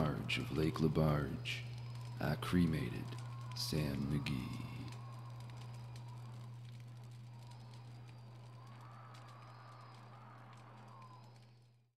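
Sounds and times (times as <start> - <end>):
light scattered clicks: 0.0 - 11.8
faint wavering tones: 0.0 - 11.9
steady low hum: 0.0 - 11.9.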